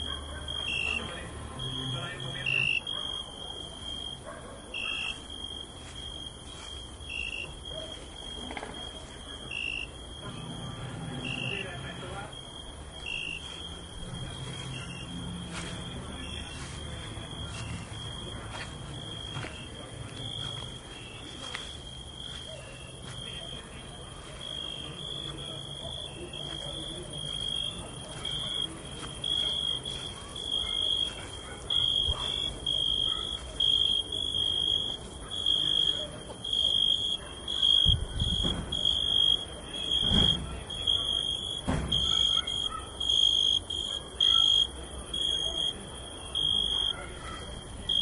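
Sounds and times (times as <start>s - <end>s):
cricket chirping: 0.0s - 48.0s.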